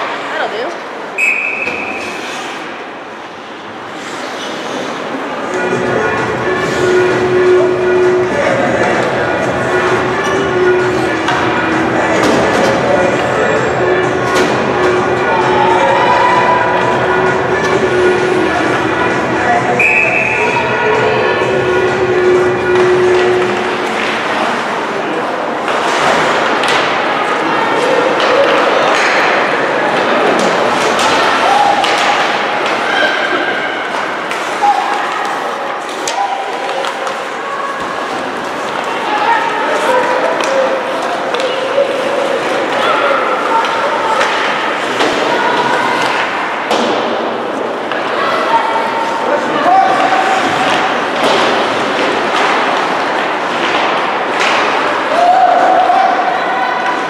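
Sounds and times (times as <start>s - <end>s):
spectators calling and chattering: 0.0s - 57.0s
puck and sticks hitting boards: 11.2s - 12.9s, 14.2s - 14.9s, 22.7s - 24.4s, 25.6s - 27.2s, 28.1s - 32.9s, 39.9s - 48.1s, 49.8s - 55.3s.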